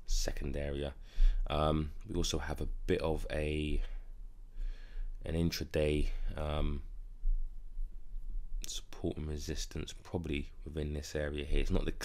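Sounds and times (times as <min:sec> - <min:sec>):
man speaking: 0:00.0 - 0:04.0, 0:05.2 - 0:06.9, 0:08.6 - 0:12.0
low steady hum: 0:00.0 - 0:12.0
man breathing in: 0:01.0 - 0:01.5, 0:04.0 - 0:05.2.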